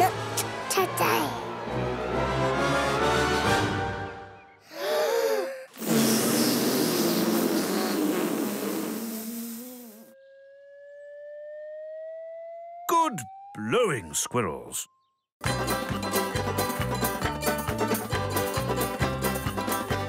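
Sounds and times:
cartoon music: 12.9s - 14.8s.

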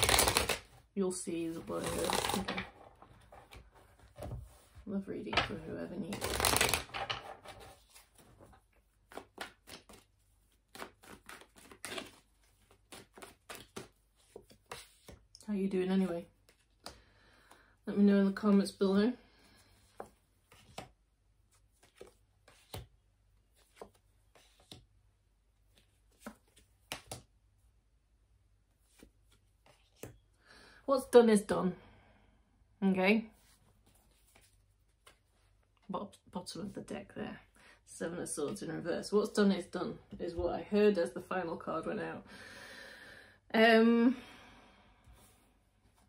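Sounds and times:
cards snapping and tapping: 0.0s - 0.7s, 6.2s - 7.0s, 26.2s - 27.3s.

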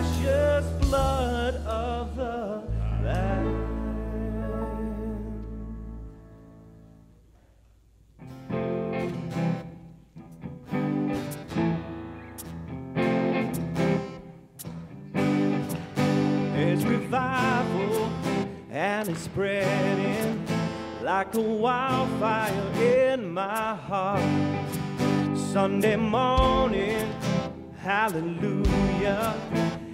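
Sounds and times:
live worship band playing: 0.0s - 6.4s, 15.2s - 29.9s
strummed acoustic guitar: 8.4s - 29.9s.

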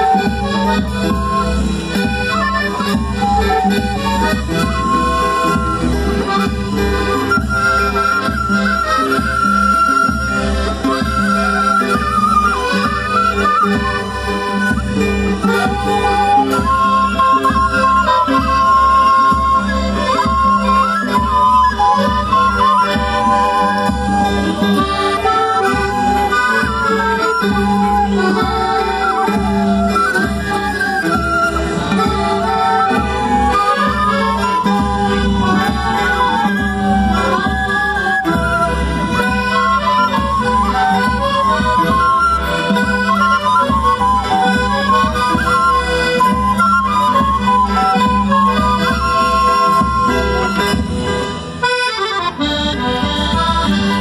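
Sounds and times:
folk band melody: 0.0s - 54.0s.

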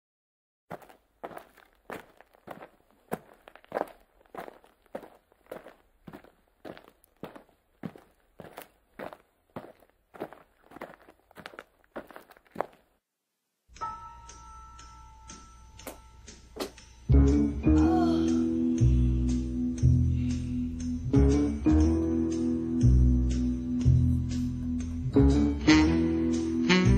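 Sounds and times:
footsteps walking: 0.7s - 13.0s
faint music with held tones: 13.7s - 20.8s.

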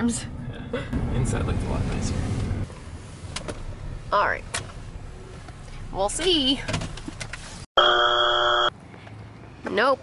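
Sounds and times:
electronic buzzer tone: 7.8s - 8.7s.

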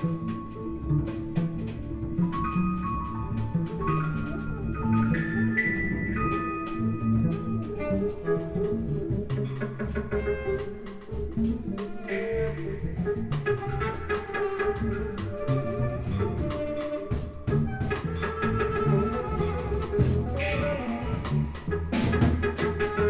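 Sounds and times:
busy bass line: 0.0s - 23.0s
live jazz band playing: 0.0s - 23.0s.

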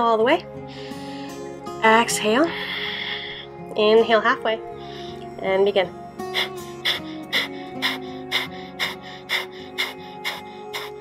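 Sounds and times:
soft background music: 0.0s - 11.0s
forceful nasal exhales: 2.5s - 3.5s, 6.3s - 11.0s.

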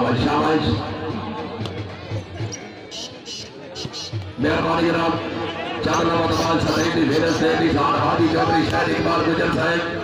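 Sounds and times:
crowd noise: 0.0s - 10.0s.

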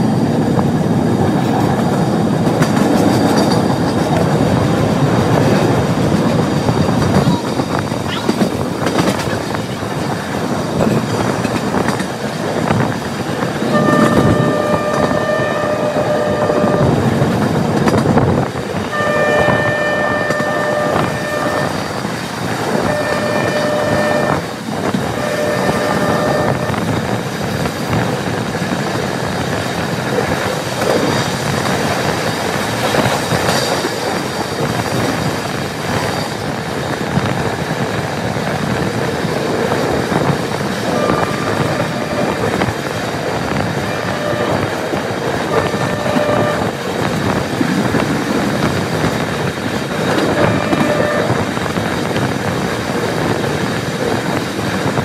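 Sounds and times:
train running on track: 0.0s - 55.0s
train horn blasts: 13.6s - 17.4s, 18.8s - 22.1s, 22.7s - 27.0s, 40.9s - 42.9s, 43.7s - 47.2s, 50.2s - 51.6s.

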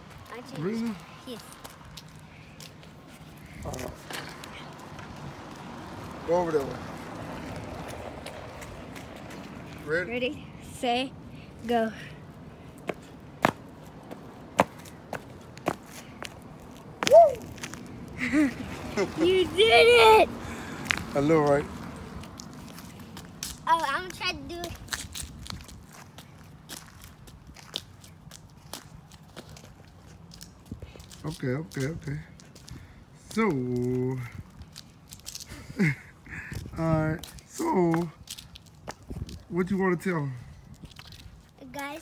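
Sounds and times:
person asking a question: 0.2s - 1.7s, 3.4s - 4.7s, 19.0s - 20.4s, 23.5s - 24.8s, 41.6s - 42.0s
footfalls on concrete: 7.5s - 9.9s, 12.8s - 18.5s, 22.1s - 39.5s
sandal footsteps on concrete: 11.9s - 18.0s.

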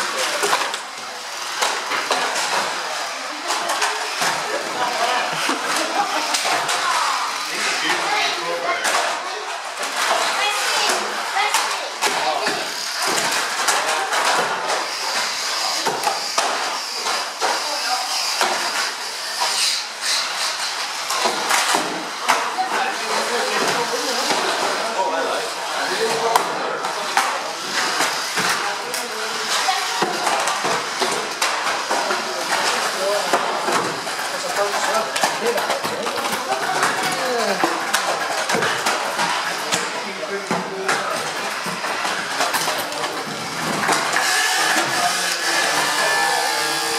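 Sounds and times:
people talking in background: 0.0s - 46.9s
toy cars clattering together: 0.0s - 46.9s.

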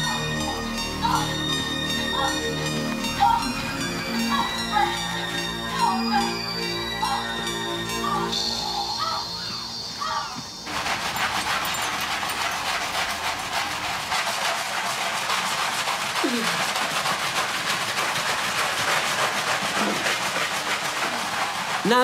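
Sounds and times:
wet cloths scrubbing tiled floor: 0.0s - 22.0s.

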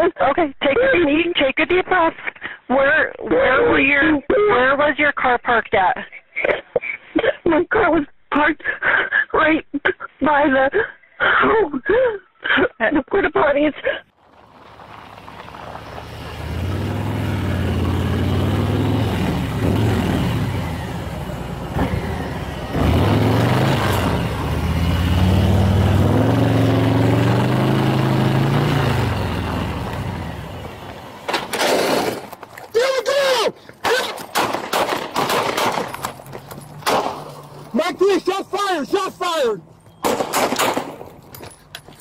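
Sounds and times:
vehicle engine revving: 14.2s - 32.3s
rapid sharp cracks and clicks: 33.9s - 36.1s.

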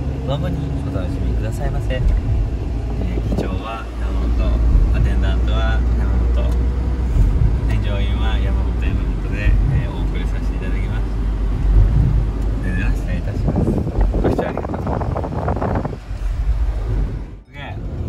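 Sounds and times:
engine and road noise rumble: 0.0s - 18.0s.

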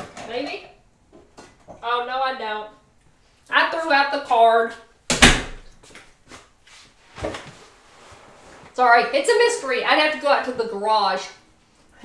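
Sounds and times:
rustling: 5.6s - 9.1s
person sitting down in chair: 6.3s - 8.8s.

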